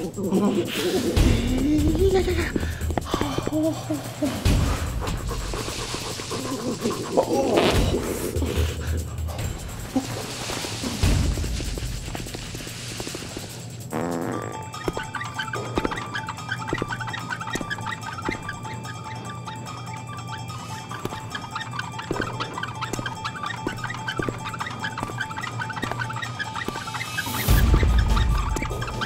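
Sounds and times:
body scraping across concrete: 2.0s - 29.0s
thumps: 9.3s - 29.0s.

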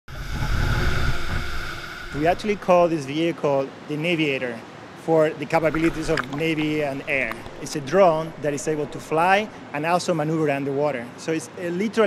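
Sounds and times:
drone propellers whining: 0.1s - 3.1s
low rumble: 0.1s - 3.1s.

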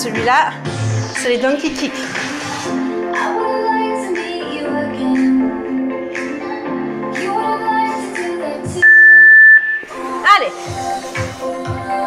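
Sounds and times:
workout music with steady beat: 0.0s - 12.0s
loud electronic beep: 8.8s - 9.9s.

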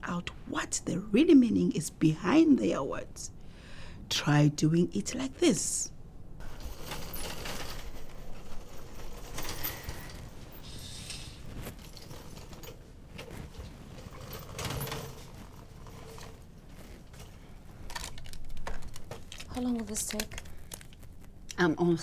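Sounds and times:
metal trolley rattling: 6.4s - 10.6s, 11.6s - 17.3s.

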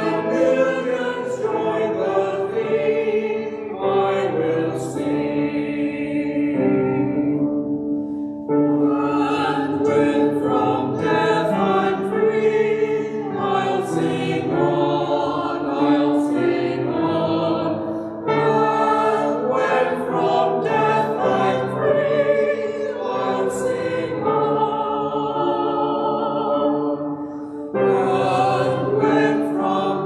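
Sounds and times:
church choir singing: 0.0s - 30.0s.

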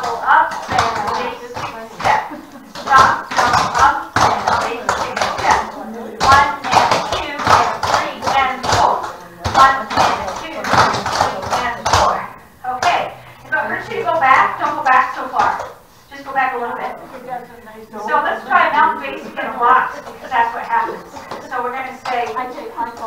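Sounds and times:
woman talking: 0.0s - 23.0s.

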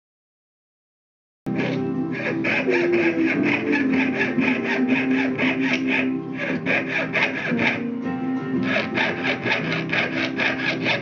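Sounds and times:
guitar music: 1.5s - 11.0s
saw rasping through sheet metal: 1.5s - 11.0s.

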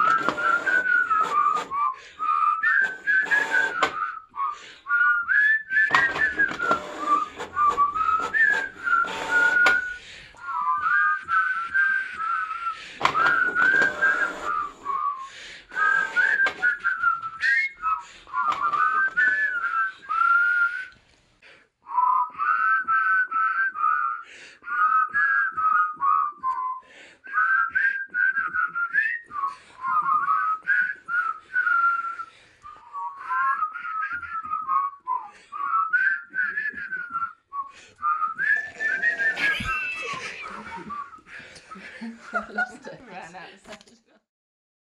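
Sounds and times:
person whistling a tune: 0.0s - 21.0s, 21.8s - 42.6s.

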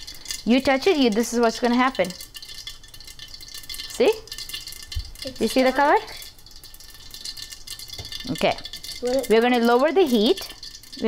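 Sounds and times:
seeds popping in hot oil: 0.0s - 11.0s.

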